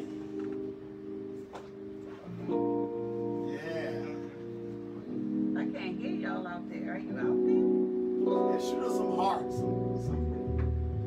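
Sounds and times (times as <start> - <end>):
person's voice: 3.4 - 4.4.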